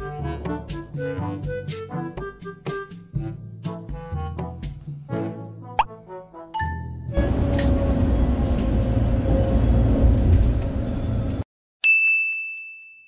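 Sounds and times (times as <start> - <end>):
high ding: 11.8 - 13.0.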